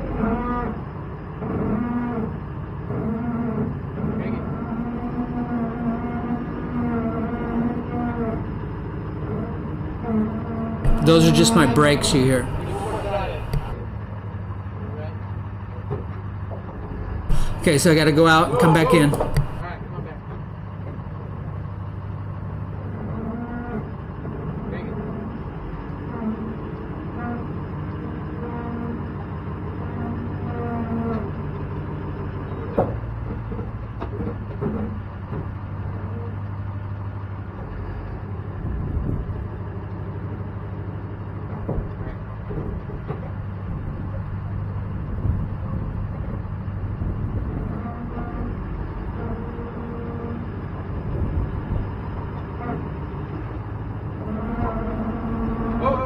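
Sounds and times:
brakes groaning: 0.0s - 56.0s
pickup truck idling: 4.6s - 19.7s.

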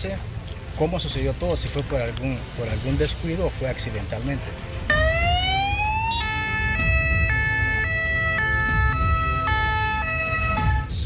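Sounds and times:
low traffic rumble: 0.0s - 11.0s
emergency siren wailing: 4.8s - 11.0s.

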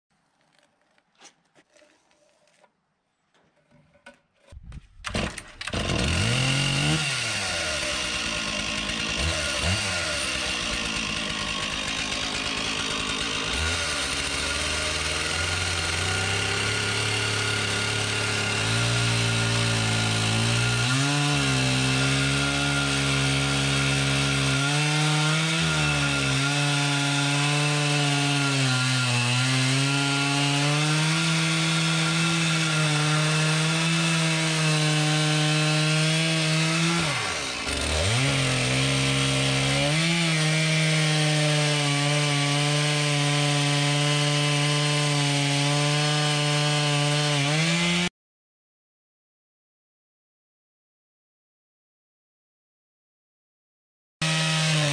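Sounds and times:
chainsaw cutting concrete: 5.1s - 48.1s, 54.2s - 54.9s.

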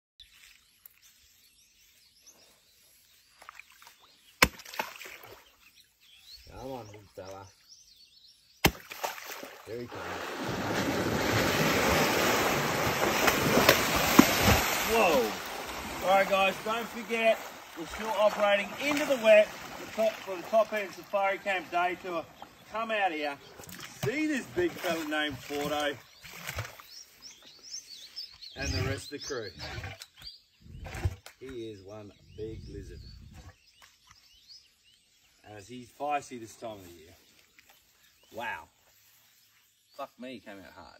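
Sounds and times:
small birds chirping: 0.2s - 10.0s, 11.4s - 40.9s
water splashing: 3.4s - 5.6s, 8.6s - 26.9s
slap into water: 4.4s - 5.3s, 8.6s - 9.5s, 12.9s - 14.9s.

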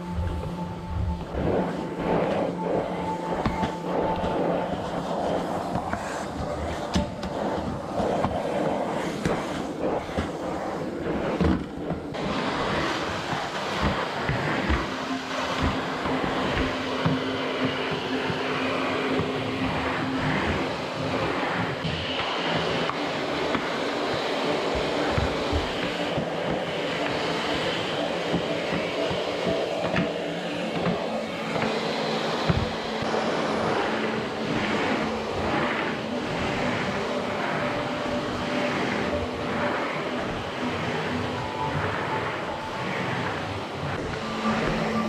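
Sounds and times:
vacuum cleaner running: 0.0s - 45.0s.

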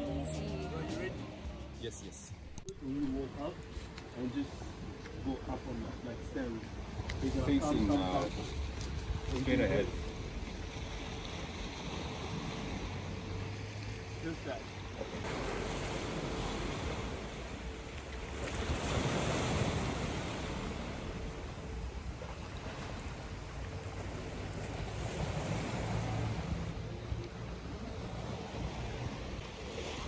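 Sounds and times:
sea waves washing in: 0.0s - 30.0s.

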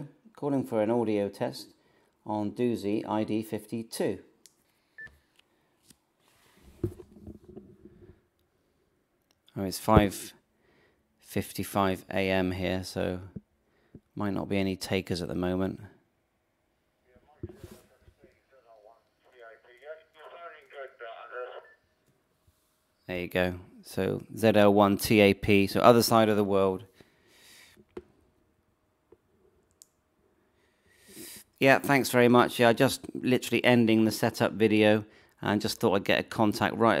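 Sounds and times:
faint muffled sounds: 17.0s - 22.0s
man's voice over radio speaker: 17.1s - 21.8s.

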